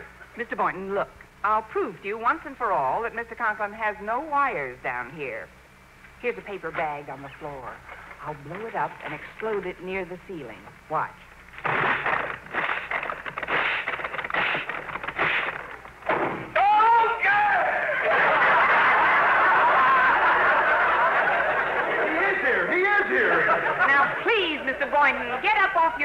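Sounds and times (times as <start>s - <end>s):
puffs blowing up paper bag: 11.5s - 16.5s
paper bag popping bang: 11.6s - 16.6s
audience laughter: 17.9s - 24.9s.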